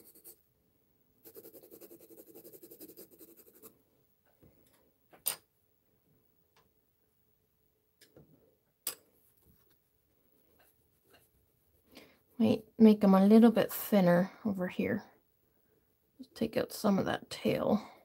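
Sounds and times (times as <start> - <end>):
pencil shading on paper: 0.0 - 0.4, 1.2 - 3.7.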